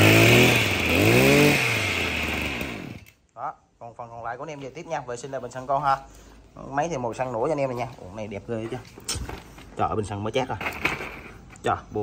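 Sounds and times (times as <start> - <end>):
brush cutter engine running: 0.0 - 3.2.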